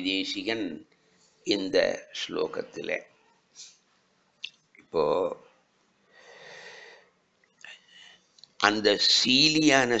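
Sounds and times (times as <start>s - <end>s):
man breathing: 6.1s - 8.3s.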